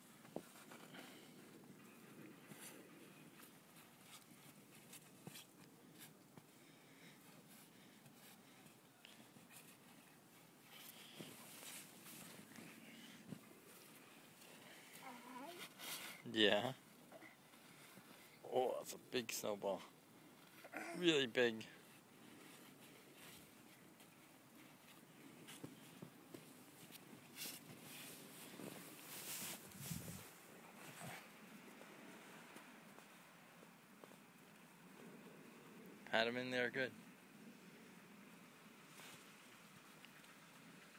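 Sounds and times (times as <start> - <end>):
crunching of snow: 26.8 - 31.0.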